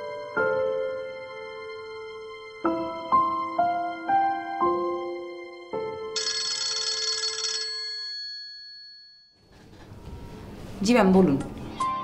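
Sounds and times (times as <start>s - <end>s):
phone ringtone chimes: 6.2s - 9.4s.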